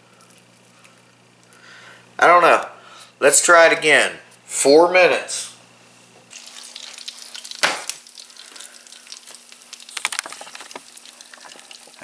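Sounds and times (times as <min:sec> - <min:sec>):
bacon sizzling and crackling: 0:06.3 - 0:12.0.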